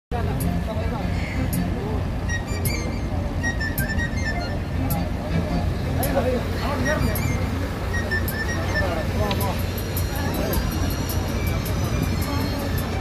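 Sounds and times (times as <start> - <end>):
ferry engine rumble: 0.1 - 13.0
people talking: 0.1 - 13.0.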